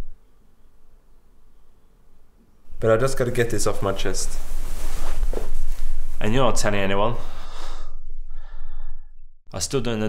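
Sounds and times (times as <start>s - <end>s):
faint breathing: 7.1s - 9.3s.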